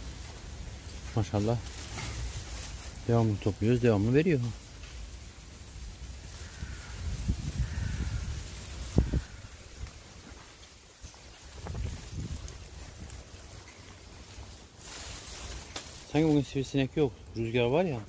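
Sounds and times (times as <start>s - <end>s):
wind buffeting microphone: 6.2s - 10.6s, 11.3s - 13.4s.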